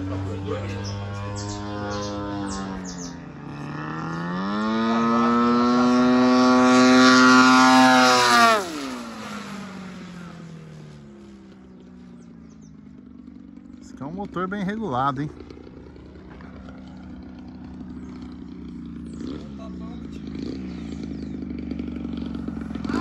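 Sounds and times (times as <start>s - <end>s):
model airplane propeller engine: 0.0s - 23.0s.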